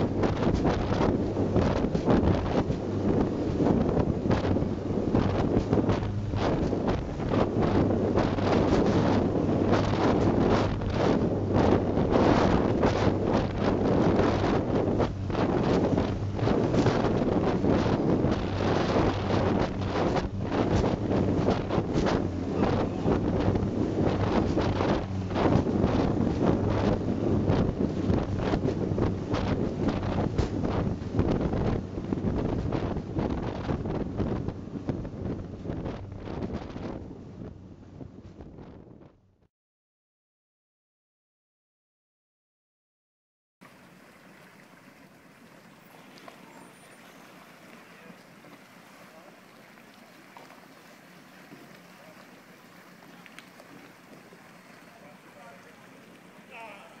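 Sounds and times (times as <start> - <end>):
hull slamming through waves: 0.0 - 38.8, 43.6 - 57.0
wind buffeting microphone: 0.0 - 39.3
speedboat engine humming: 0.0 - 39.4, 43.6 - 57.0.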